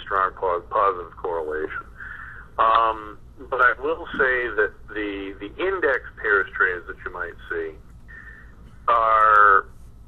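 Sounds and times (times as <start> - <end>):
man lecturing: 0.0 - 8.3, 8.9 - 9.7.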